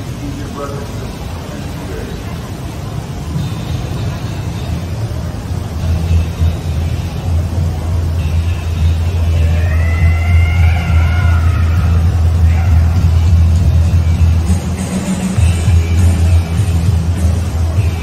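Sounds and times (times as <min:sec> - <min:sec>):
background music: 0:00.0 - 0:18.0
deep city rumble: 0:00.0 - 0:18.0.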